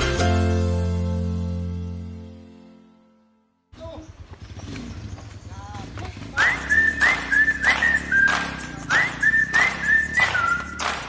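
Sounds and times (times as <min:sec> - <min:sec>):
person whistling: 0:06.4 - 0:11.0.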